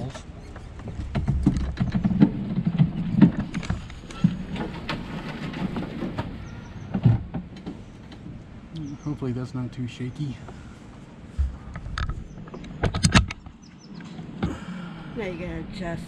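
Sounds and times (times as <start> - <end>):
rattling clicks and knocks: 0.0 - 8.4, 11.4 - 14.2
golf cart rolling on concrete: 0.0 - 8.6.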